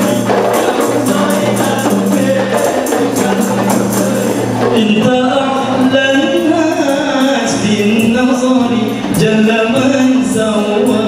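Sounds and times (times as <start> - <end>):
group of voices singing: 0.0 - 11.0
hand-struck frame drums: 0.0 - 11.0.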